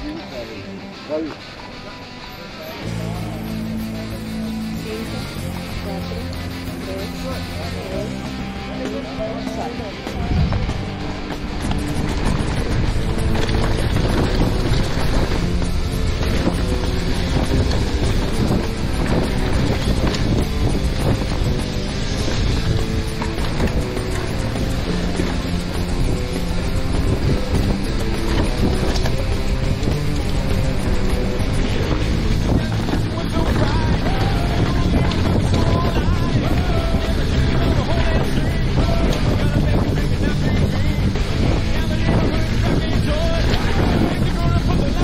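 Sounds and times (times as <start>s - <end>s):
bike tyre noise: 0.0s - 45.0s
music playing: 0.0s - 45.0s
bike chain and frame rattle: 1.9s - 45.0s
wind rushing over microphone: 10.1s - 45.0s.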